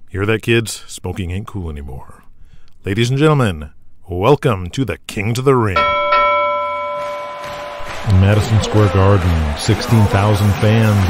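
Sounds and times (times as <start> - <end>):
bell ringing: 5.8 - 9.6.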